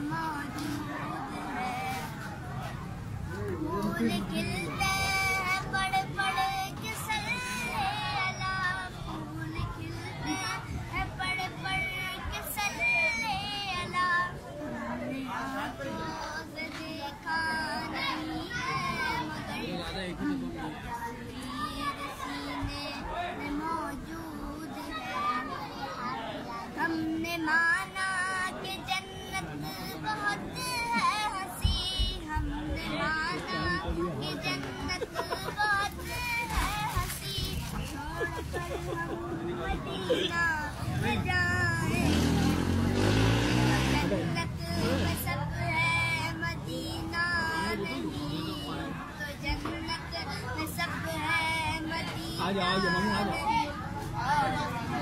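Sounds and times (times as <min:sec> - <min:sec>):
boy singing held notes: 0:00.0 - 0:55.0.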